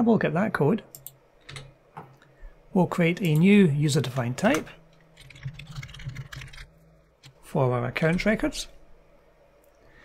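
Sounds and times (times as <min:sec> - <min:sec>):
computer keyboard typing: 0:05.2 - 0:07.4.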